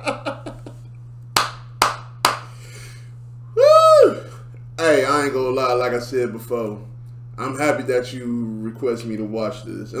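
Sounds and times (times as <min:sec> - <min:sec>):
sharp hand claps: 0:01.4 - 0:02.5.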